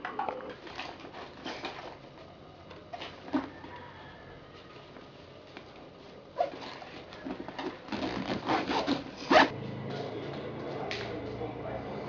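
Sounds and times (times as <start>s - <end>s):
zipper on fabric bag: 7.9s - 9.5s.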